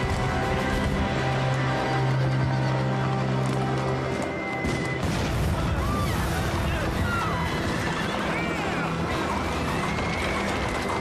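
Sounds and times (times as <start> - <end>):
hooves clopping on stone: 0.0 - 5.0, 7.7 - 11.0.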